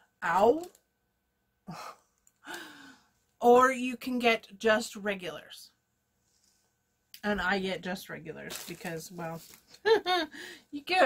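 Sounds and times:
woman sighing: 1.7 - 3.1.

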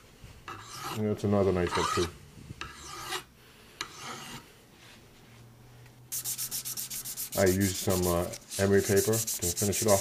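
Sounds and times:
hand file rasping on metal: 0.5 - 1.0, 1.7 - 4.4, 6.2 - 10.0.

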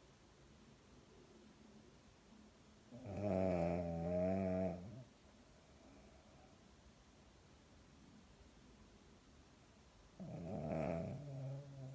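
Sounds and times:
dog snoring: 2.9 - 6.2, 10.2 - 11.9.

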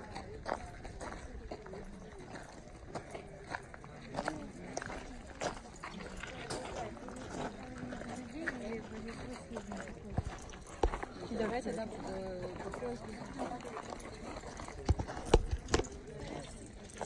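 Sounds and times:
people chattering: 0.0 - 17.0.

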